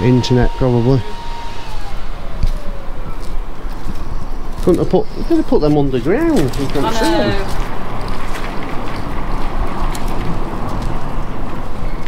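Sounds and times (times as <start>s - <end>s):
street noise: 0.0s - 12.0s
vehicle engine whine: 0.0s - 12.0s.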